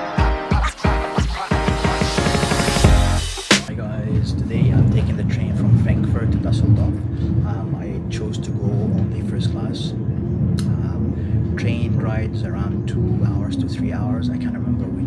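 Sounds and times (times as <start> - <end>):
upbeat intro music: 0.0 - 3.7.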